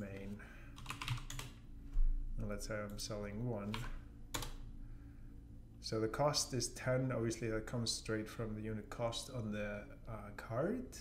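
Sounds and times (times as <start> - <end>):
computer keyboard keystroke: 0.8 - 1.6, 3.7 - 4.6.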